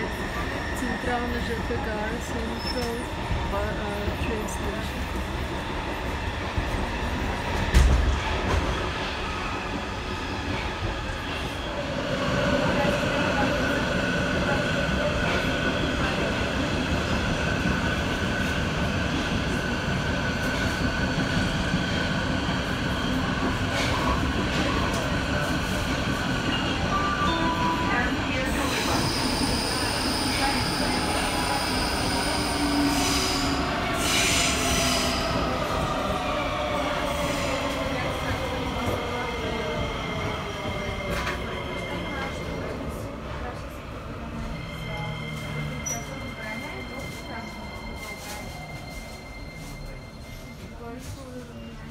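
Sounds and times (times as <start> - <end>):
train wheels rumbling on rails: 0.0 - 51.6.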